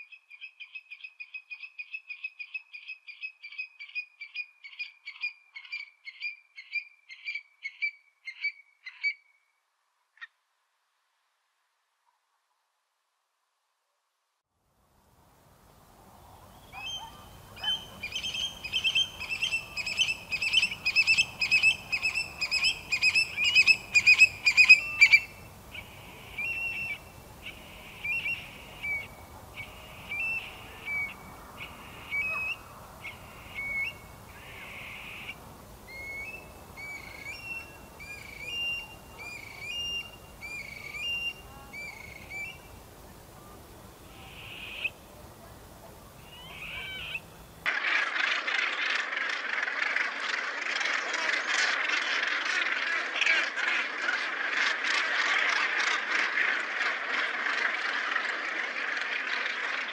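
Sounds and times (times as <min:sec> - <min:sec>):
bird calling: 0:16.5 - 0:42.8, 0:43.4 - 0:45.0, 0:46.2 - 0:59.9.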